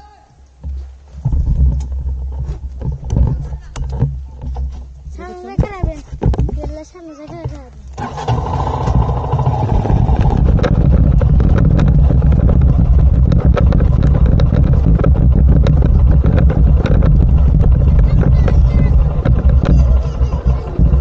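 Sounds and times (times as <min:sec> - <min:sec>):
knocks and rattles: 0:00.6 - 0:21.0
motorcycle engine: 0:07.9 - 0:21.0.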